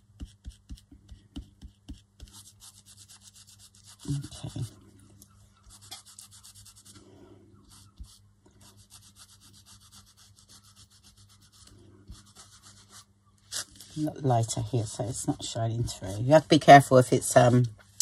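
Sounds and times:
fingertips rubbing wet paper: 1.6 - 4.7, 5.7 - 7.0, 7.7 - 13.0.

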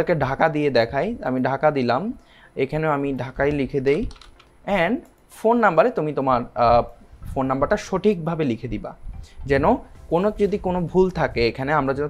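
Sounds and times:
man speaking: 0.0 - 12.0
keyboard typing: 3.9 - 5.3.

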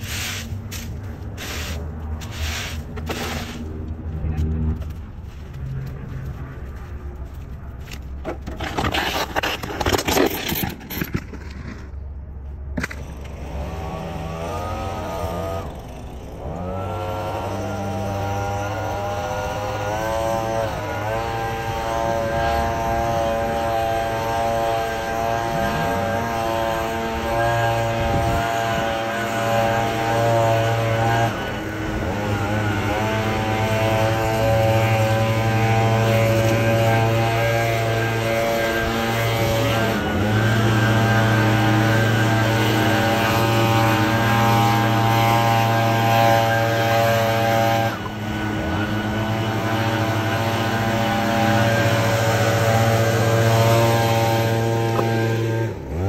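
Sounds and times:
leaf blower fan whine: 13.1 - 56.0.

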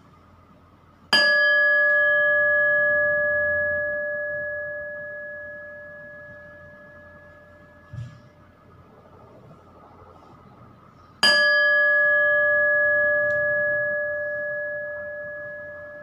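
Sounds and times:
metal bell ringing: 1.1 - 8.4, 11.2 - 16.0.

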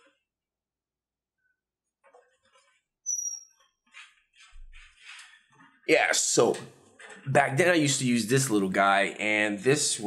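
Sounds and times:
high-pitched squeak: 3.0 - 3.8.

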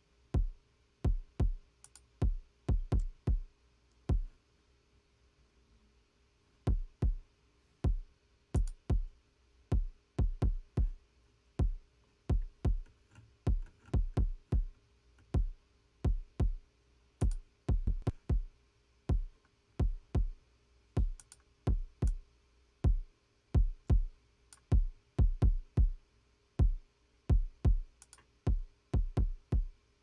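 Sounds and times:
kick drum thuds: 0.4 - 1.6, 2.2 - 3.5, 4.1 - 4.3, 6.7 - 7.2, 7.8 - 9.1, 9.7 - 11.0, 11.6 - 12.8, 13.5 - 14.7, 15.4 - 16.6, 17.2 - 18.5, 19.1 - 20.4, 21.0 - 22.2, 22.8 - 24.1, 24.7 - 26.0, 26.6 - 27.9, 28.5 - 29.7.

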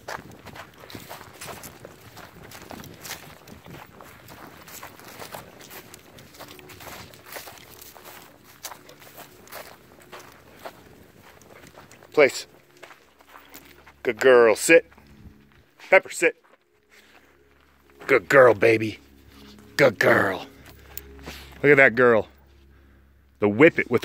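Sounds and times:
footsteps on dirt and dry grass: 0.0 - 24.0.

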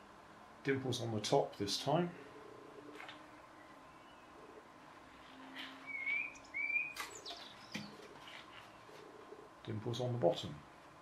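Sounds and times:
faint bird chirps: 2.3 - 9.5
birds whistling: 3.4 - 9.1.

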